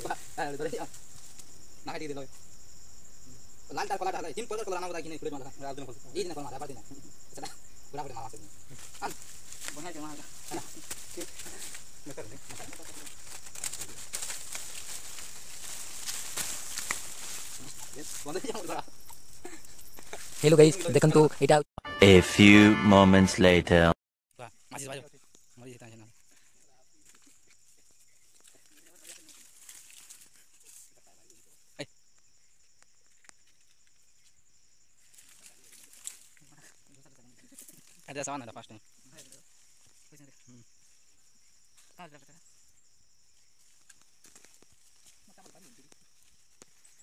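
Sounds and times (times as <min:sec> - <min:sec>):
quiet voices: 0:21.9 - 0:24.0.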